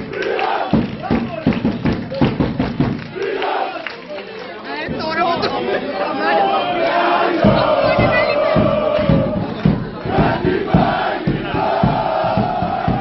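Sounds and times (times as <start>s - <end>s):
crowd shouting and chanting: 0.0s - 13.0s.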